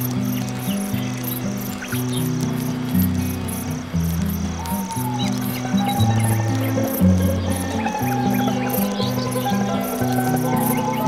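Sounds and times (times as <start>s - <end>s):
crickets chirping: 0.0s - 11.0s
music of held low notes: 0.0s - 11.0s.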